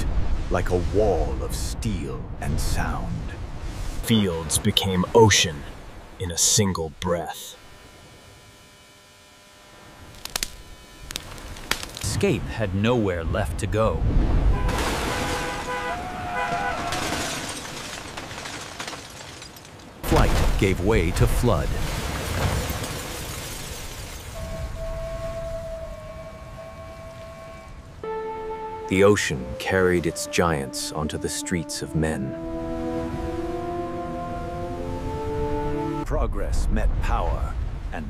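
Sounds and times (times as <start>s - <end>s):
faint hum: 1.8s - 14.6s
sharp cracks: 10.1s - 12.1s
rushing floodwater: 14.5s - 25.3s
steady high tone: 24.4s - 30.6s.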